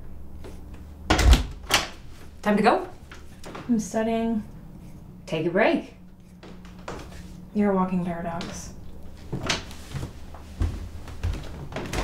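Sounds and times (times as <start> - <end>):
footsteps on a floor: 8.3 - 12.0.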